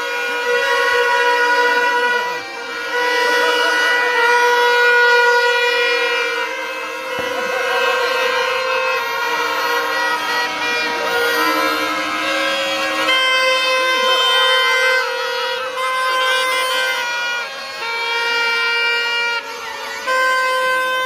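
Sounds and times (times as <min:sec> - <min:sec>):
overlapping horn-like tones: 0:00.0 - 0:21.0.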